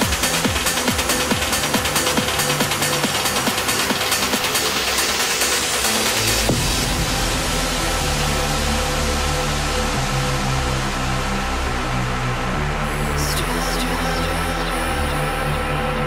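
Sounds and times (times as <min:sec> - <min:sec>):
electronic dance music: 0:00.0 - 0:11.3, 0:12.2 - 0:16.0
deep bass line: 0:00.0 - 0:16.0.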